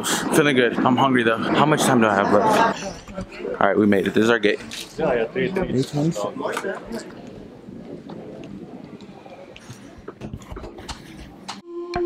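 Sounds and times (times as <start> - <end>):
faint distant voices: 0.0 - 11.6.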